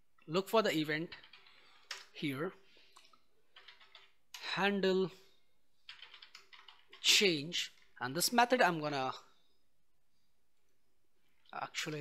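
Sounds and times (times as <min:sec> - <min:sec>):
computer keyboard typing: 0:01.0 - 0:02.2, 0:03.0 - 0:04.4, 0:05.9 - 0:07.2.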